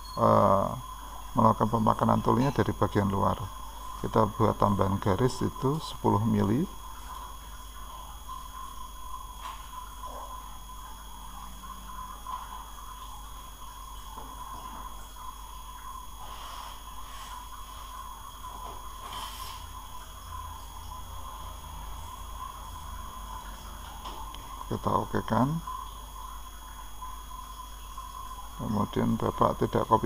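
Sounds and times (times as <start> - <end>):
background hum and hiss: 0.0 - 30.0.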